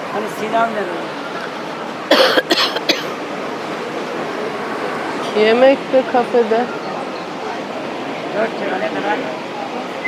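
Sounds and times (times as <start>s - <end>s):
person coughing: 2.1s - 3.1s.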